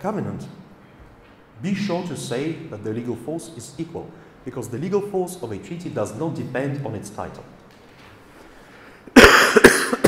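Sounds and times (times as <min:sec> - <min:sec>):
man coughing: 0:09.1 - 0:10.0.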